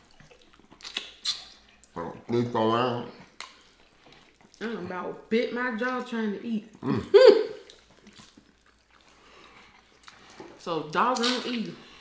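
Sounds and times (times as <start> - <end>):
chewing and lip-smacking: 0.0 - 12.0
person humming mm: 6.8 - 7.4.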